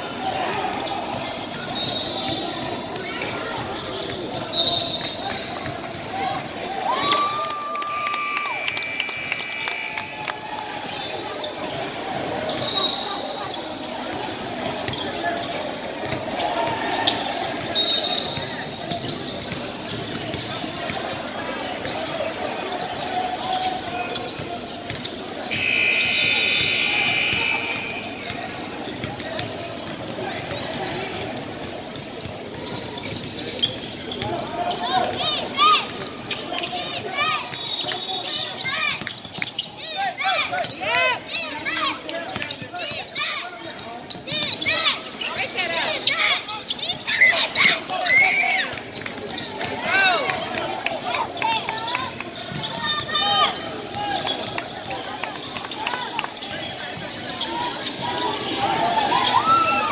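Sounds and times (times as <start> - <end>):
spectators talking: 0.0 - 59.9
sneakers squeaking on court: 0.1 - 7.2, 9.0 - 50.5, 51.1 - 59.9.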